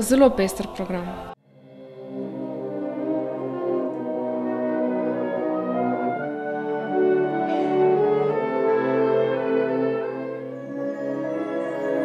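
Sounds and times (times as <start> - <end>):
wind orchestra playing slow chords: 1.4 - 12.0.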